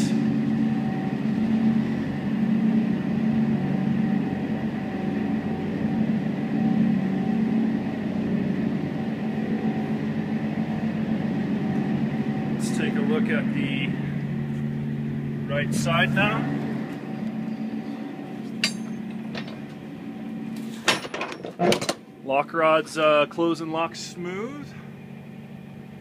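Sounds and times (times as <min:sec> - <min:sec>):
refrigeration unit engine humming: 0:00.0 - 0:26.0.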